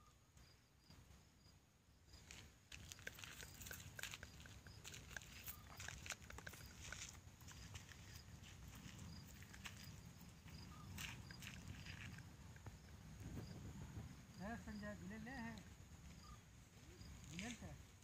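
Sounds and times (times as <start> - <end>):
faint clicks and crackles: 2.2 - 9.9
faint high chirp: 5.3 - 6.0, 10.6 - 11.1, 16.2 - 17.3.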